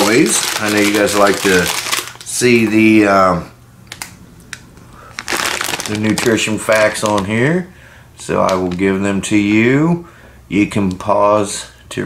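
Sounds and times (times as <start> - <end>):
plastic packet crinkling: 0.0 - 3.0, 3.9 - 4.2, 5.0 - 7.6, 8.3 - 9.1.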